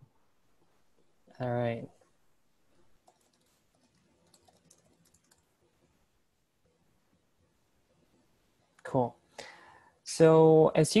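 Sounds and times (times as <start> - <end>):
computer keyboard typing: 3.0 - 5.8.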